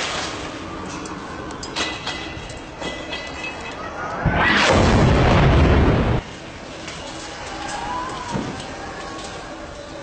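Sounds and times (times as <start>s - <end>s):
steady rumbling: 0.6s - 7.5s.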